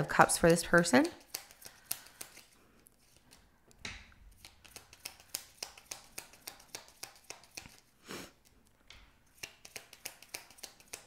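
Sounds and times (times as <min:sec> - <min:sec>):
cards being shuffled: 0:01.1 - 0:03.5, 0:04.3 - 0:07.9, 0:09.4 - 0:11.0.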